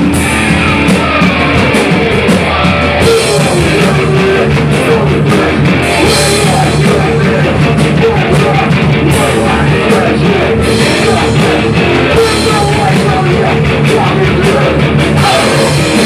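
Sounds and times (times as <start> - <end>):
drum kit: 0.0 - 16.0
electric guitar: 0.0 - 16.0.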